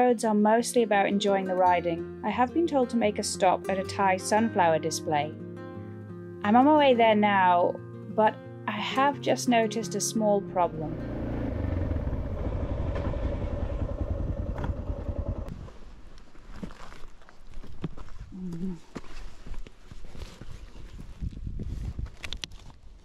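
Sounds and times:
motorcycle engine running: 0:10.6 - 0:15.5
clicks and rustles of pannier: 0:19.1 - 0:23.0.

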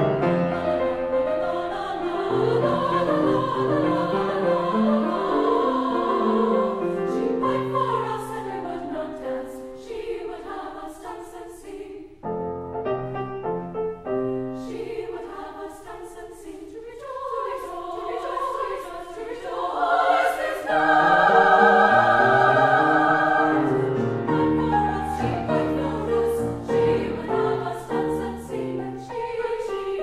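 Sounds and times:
piano accompaniment: 0:00.0 - 0:09.0, 0:12.2 - 0:14.9, 0:20.1 - 0:30.0
women's choir singing: 0:00.2 - 0:12.3, 0:14.6 - 0:30.0.

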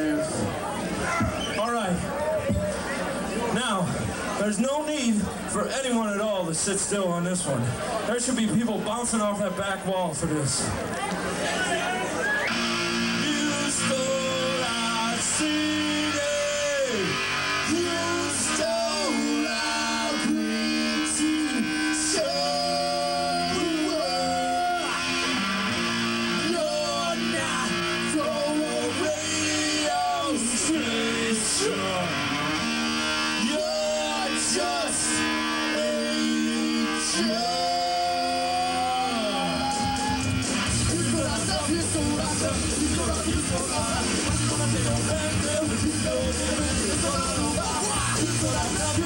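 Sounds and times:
live ska band playing: 0:10.5 - 0:49.0
horns sliding down in pitch: 0:12.2 - 0:31.0.

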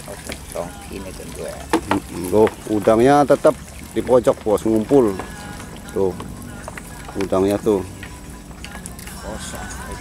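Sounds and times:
water sloshing in a net: 0:00.0 - 0:10.0.

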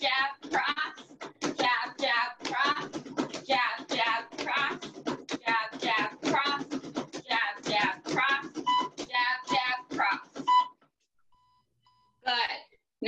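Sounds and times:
timer short high beeps: 0:08.6 - 0:08.9, 0:10.5 - 0:10.7.

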